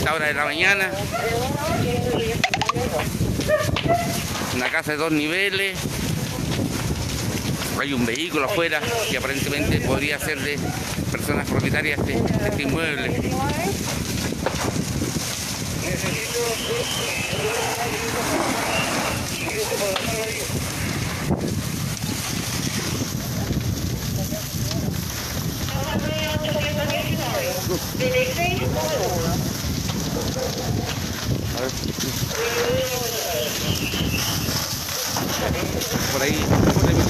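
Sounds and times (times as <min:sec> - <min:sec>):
house fire burning: 0:00.0 - 0:37.0
wind buffeting microphone: 0:00.0 - 0:37.0.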